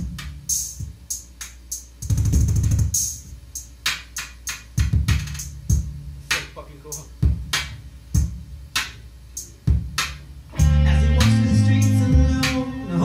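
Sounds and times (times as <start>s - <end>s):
kick drum and cymbal hits: 0.0s - 12.6s
low sustained bass line: 10.5s - 13.0s.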